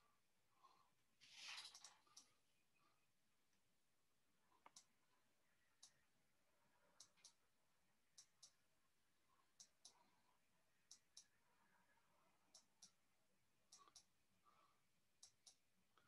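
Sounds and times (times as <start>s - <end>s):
faint paired clicks: 5.8s - 6.0s.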